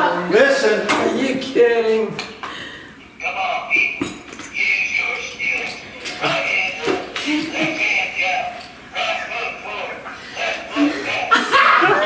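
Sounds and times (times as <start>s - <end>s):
tinny recorded man's voice: 0.0s - 2.2s, 3.2s - 11.4s.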